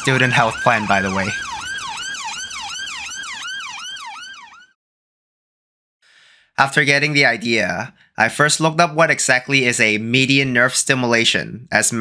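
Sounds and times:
ambulance siren yelping: 0.0s - 4.8s.

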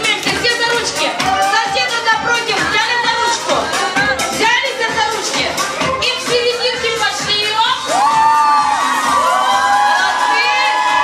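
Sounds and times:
crowd cheering and shouting: 0.0s - 11.0s
low dance beat: 0.0s - 11.0s.

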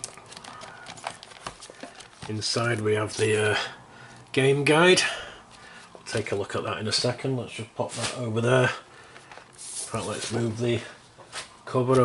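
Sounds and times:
plastic page rustling: 0.0s - 3.5s, 9.0s - 12.0s.

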